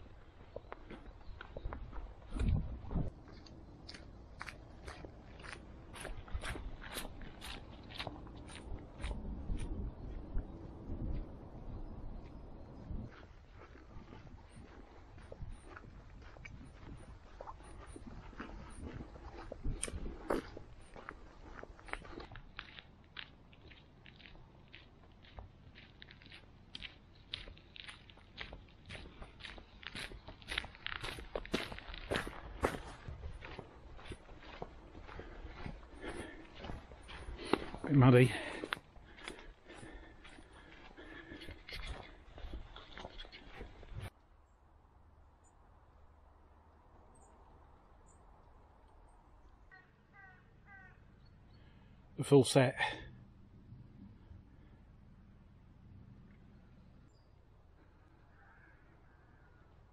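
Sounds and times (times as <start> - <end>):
footsteps on muddy trail: 0.0 - 44.2.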